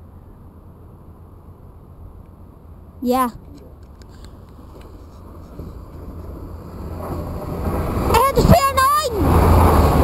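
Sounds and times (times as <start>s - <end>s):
train approaching at speed: 4.3s - 10.0s.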